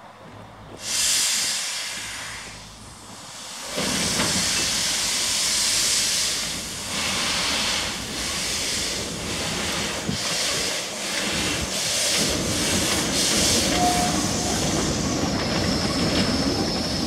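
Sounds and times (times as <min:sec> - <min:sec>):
low rumble of moving train: 0:00.0 - 0:17.0
steam locomotive hissing: 0:00.7 - 0:17.0.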